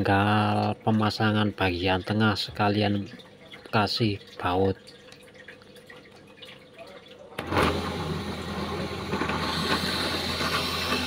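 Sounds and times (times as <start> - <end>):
drill press motor humming: 7.4 - 11.0
drill bit boring into wood: 9.2 - 11.0.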